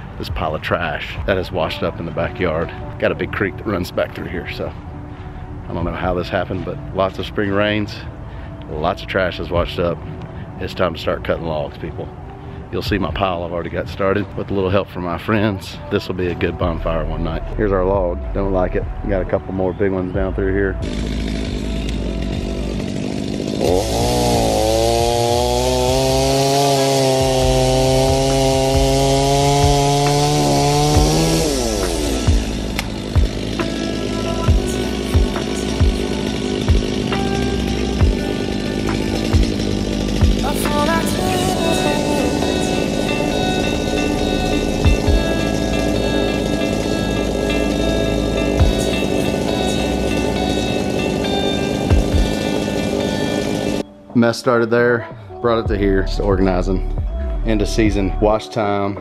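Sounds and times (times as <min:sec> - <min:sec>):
chainsaw cutting logs: 0:00.0 - 0:14.5, 0:19.5 - 0:53.9
music with steady beat: 0:31.8 - 0:46.5, 0:47.2 - 0:49.2, 0:55.7 - 0:58.2.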